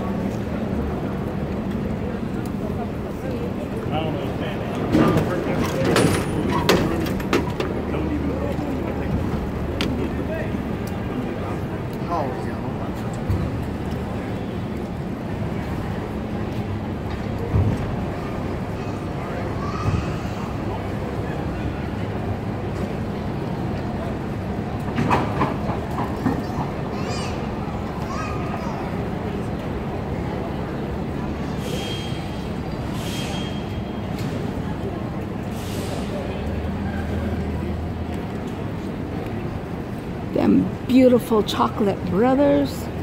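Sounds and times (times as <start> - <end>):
low rumble of cable car: 0.0 - 43.0
metal clanks and squeaks: 5.0 - 7.7.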